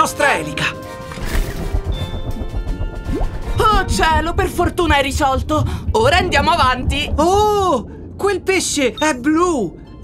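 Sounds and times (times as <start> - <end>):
background music: 0.0 - 10.0
cartoon propeller spinning: 1.2 - 6.4
low churning rumble: 1.2 - 10.0.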